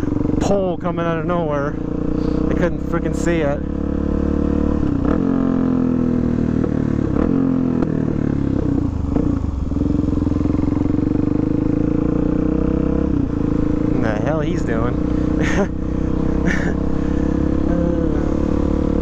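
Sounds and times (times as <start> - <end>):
motorcycle engine running: 0.0 - 19.0.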